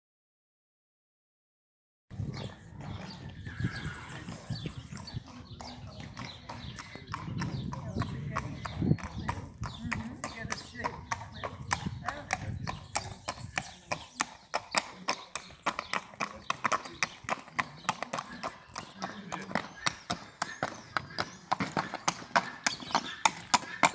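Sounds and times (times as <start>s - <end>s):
hooves clip-clopping on paving: 2.2s - 23.9s.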